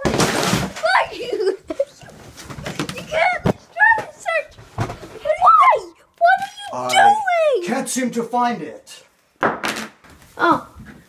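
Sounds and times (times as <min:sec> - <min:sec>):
person speaking: 0:05.6 - 0:09.1.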